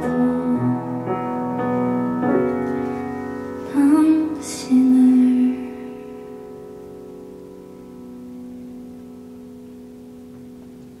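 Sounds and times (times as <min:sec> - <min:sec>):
woman singing: 0:00.0 - 0:01.1, 0:03.6 - 0:06.1
grand piano chord: 0:00.0 - 0:11.0.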